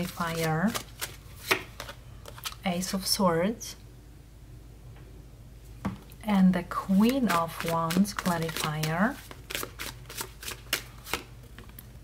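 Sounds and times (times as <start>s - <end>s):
cards snapping and sliding: 7.6s - 11.3s.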